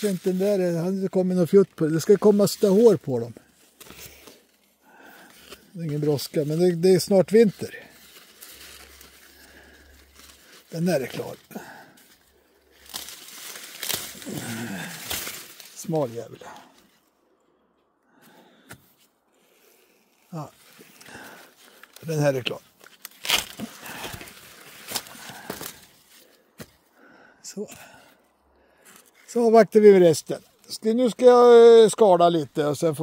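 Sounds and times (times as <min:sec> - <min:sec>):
maize leaves rustling: 0:00.0 - 0:17.1, 0:18.4 - 0:26.8
stalks snapping: 0:12.7 - 0:16.0, 0:22.8 - 0:25.9.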